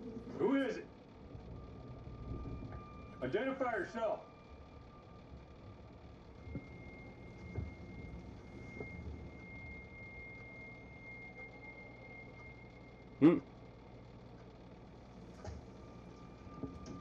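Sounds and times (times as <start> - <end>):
faint high steady tone: 0.0 - 17.0
low rumble: 0.0 - 17.0.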